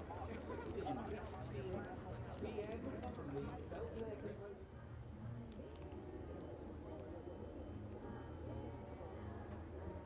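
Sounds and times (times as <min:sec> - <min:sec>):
people chattering: 0:00.0 - 0:10.0.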